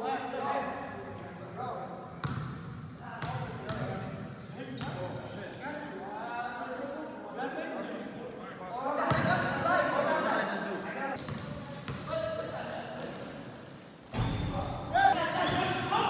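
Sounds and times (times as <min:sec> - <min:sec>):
basketball bouncing on court: 0:02.2 - 0:02.6.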